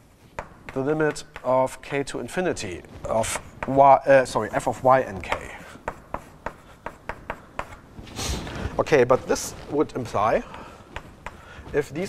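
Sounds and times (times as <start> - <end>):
chalk tapping on blackboard: 0.1 - 7.9, 9.4 - 12.0.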